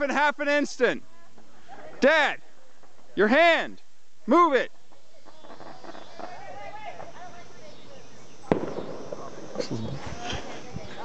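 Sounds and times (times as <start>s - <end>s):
firework fountain hissing: 4.7s - 11.0s
sharp pop: 8.5s - 9.0s.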